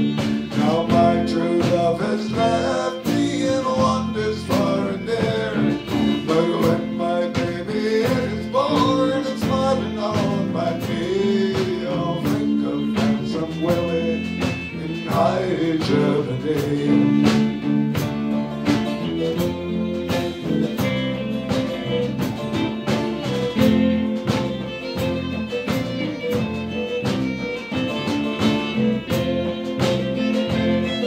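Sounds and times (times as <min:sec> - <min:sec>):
acoustic and electric guitars: 0:00.0 - 0:31.0
bass guitar: 0:00.0 - 0:31.0
bowed fiddle: 0:00.0 - 0:31.0
drum kit beat: 0:00.0 - 0:31.0.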